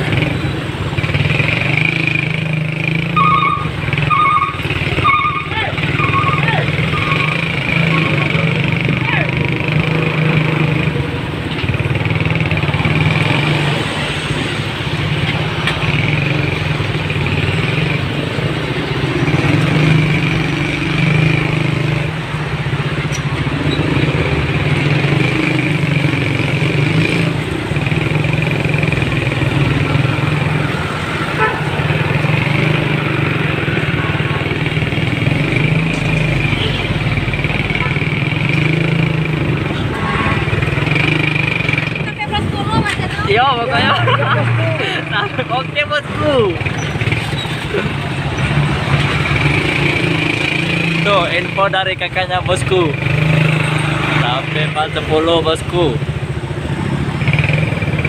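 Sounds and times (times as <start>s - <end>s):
motorcycle engine running: 0.0s - 58.0s
traffic noise: 0.0s - 58.0s.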